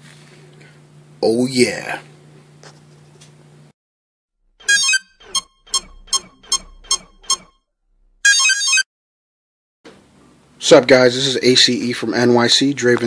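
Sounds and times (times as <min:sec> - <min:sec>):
electronic beeps: 0:04.7 - 0:07.5.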